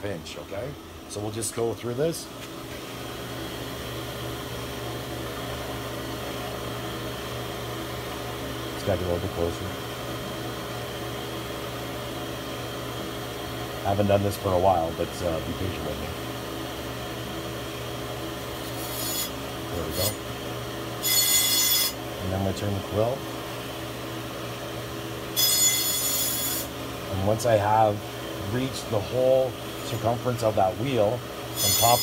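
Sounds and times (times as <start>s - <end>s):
grinding wheel humming: 3.2s - 32.0s.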